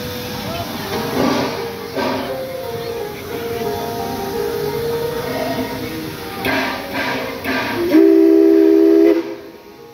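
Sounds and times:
steam exhaust chuff: 0:00.0 - 0:02.6, 0:06.4 - 0:09.7
steam locomotive whistle blast: 0:01.1 - 0:02.4, 0:06.4 - 0:09.9.

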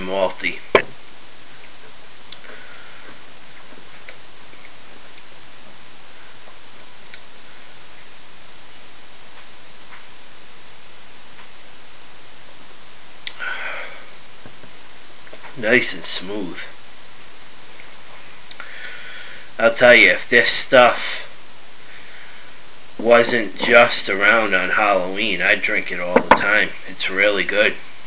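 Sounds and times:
room hiss: 0:00.0 - 0:28.0
short breath: 0:02.4 - 0:03.2, 0:13.3 - 0:14.2, 0:18.5 - 0:19.6
faint clicks: 0:18.5 - 0:18.7.

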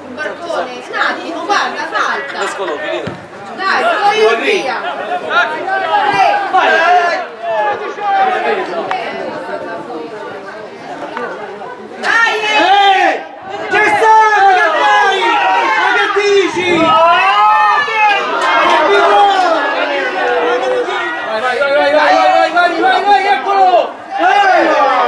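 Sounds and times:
people shouting and calling: 0:00.0 - 0:10.2, 0:11.1 - 0:25.0.

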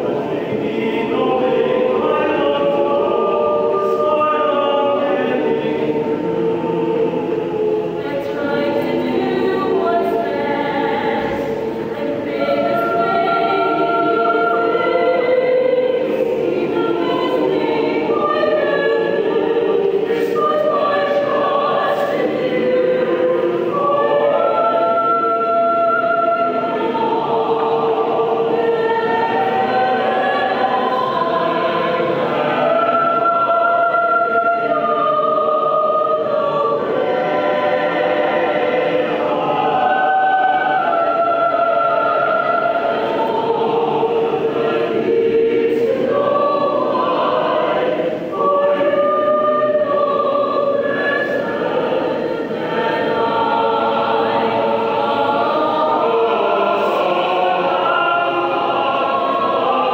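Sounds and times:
mixed choir singing: 0:00.0 - 0:59.9.

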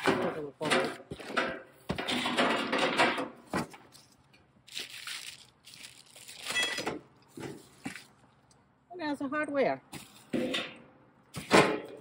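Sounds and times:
packing wrap rustling and crinkling: 0:04.0 - 0:06.8.

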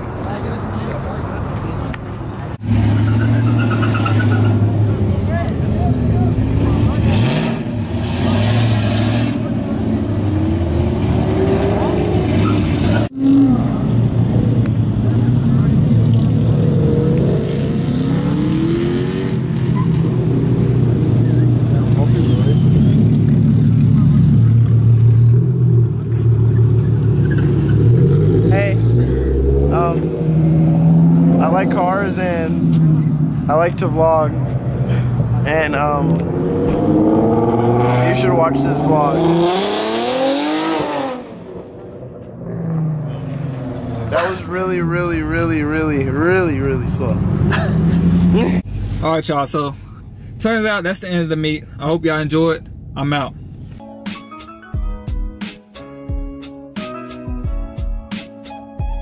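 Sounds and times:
car engine revving: 0:02.6 - 0:48.7.

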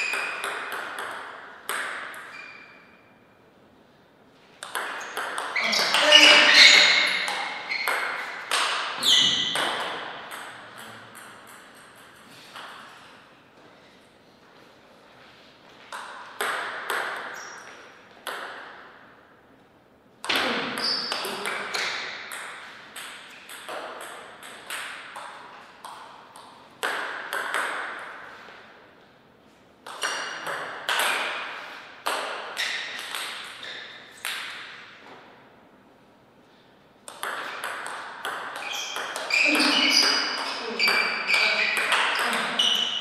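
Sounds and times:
ball bouncing on table: 0:00.0 - 0:02.5, 0:04.6 - 0:12.8, 0:15.9 - 0:17.6, 0:20.2 - 0:28.1, 0:29.8 - 0:34.8, 0:37.0 - 0:42.8
table tennis ball clicking off bats: 0:37.0 - 0:39.3.

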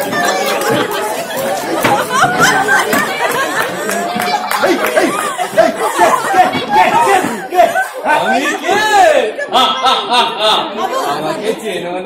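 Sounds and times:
several voices talking: 0:00.0 - 0:12.0.

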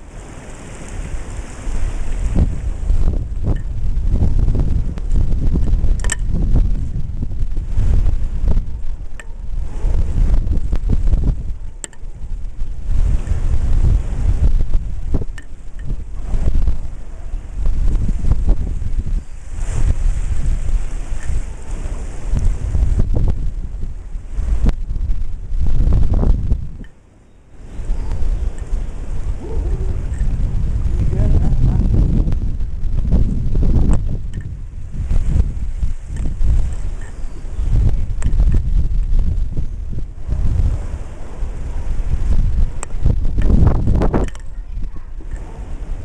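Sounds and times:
ocean surf: 0:00.0 - 0:46.0
wind buffeting microphone: 0:00.0 - 0:46.0.

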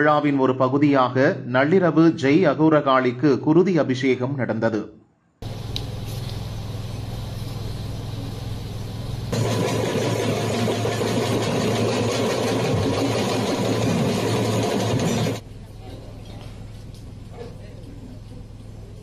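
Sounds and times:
low engine-like hum: 0:05.4 - 0:19.0.

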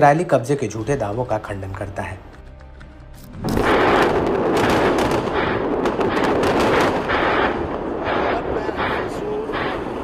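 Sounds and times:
gunfire cracks and bangs: 0:03.4 - 0:07.5.

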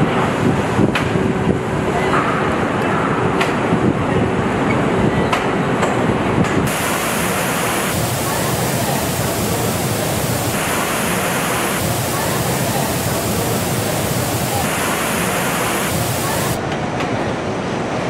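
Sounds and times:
factory clatter: 0:05.8 - 0:17.2
spray booth hiss: 0:06.7 - 0:16.6.

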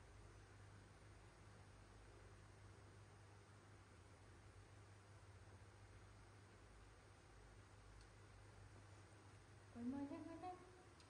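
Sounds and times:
person humming rising pitch: 0:09.8 - 0:10.9.

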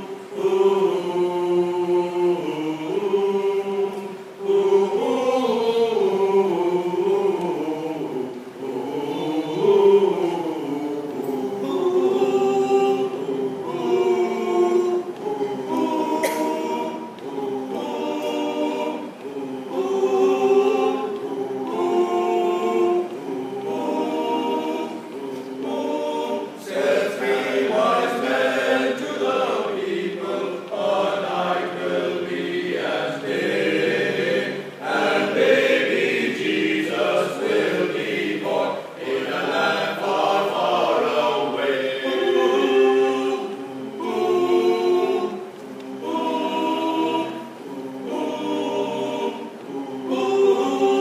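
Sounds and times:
men's choir singing a cappella: 0:00.0 - 0:51.0.

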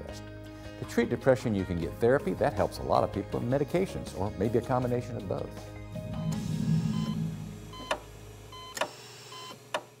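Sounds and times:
low whoosh: 0:05.8 - 0:08.0.

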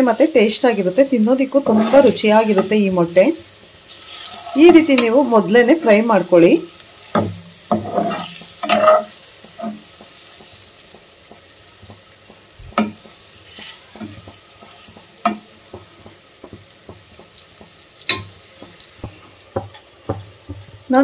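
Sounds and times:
eggs sizzling in oil: 0:00.0 - 0:21.0
utensil knocking against pan: 0:07.1 - 0:20.9.

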